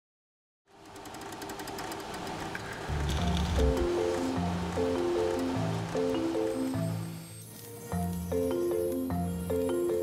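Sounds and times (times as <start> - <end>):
machine clicking and clattering: 0.7 - 6.0.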